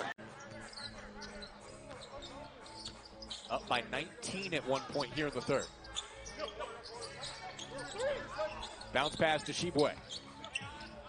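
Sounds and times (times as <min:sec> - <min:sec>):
faint voices in arena: 0:00.0 - 0:11.0.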